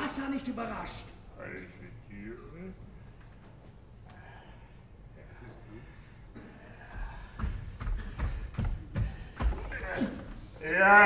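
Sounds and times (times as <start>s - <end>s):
barefoot footsteps on stage floor: 6.8s - 10.5s.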